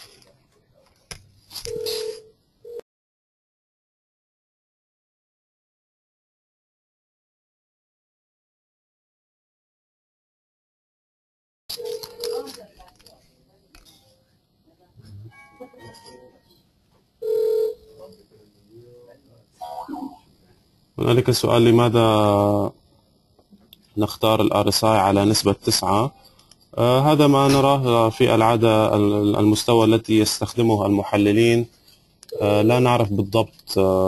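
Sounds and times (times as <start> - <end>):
telephone-like tone: 1.6 - 2.8, 11.7 - 12.6, 17.2 - 18.1.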